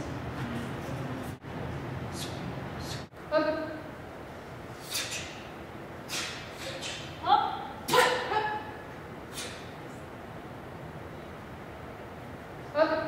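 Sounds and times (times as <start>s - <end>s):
boy shouting sharply: 7.2s - 8.6s.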